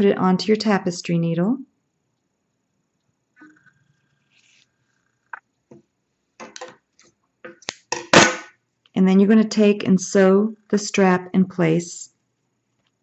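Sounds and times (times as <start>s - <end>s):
small handling knocks: 5.7s - 6.8s.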